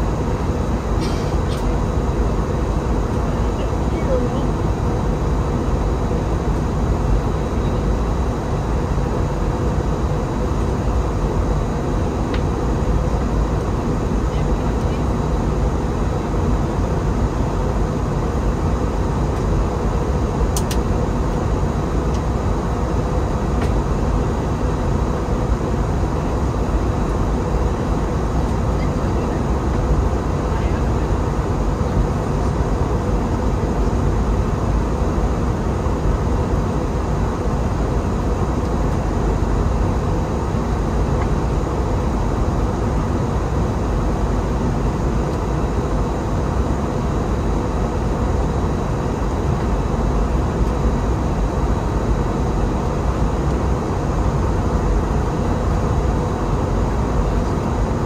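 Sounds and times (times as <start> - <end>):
aircraft cabin engine rush: 0.0 - 58.0
faint steady hum: 0.0 - 58.0.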